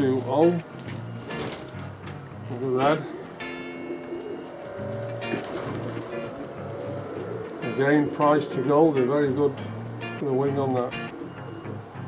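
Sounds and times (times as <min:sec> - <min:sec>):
background music: 0:00.0 - 0:12.0
pigeons cooing: 0:01.1 - 0:12.0.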